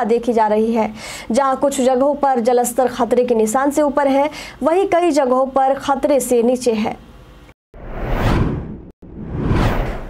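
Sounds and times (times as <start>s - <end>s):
whoosh sound effects: 7.8s - 10.0s.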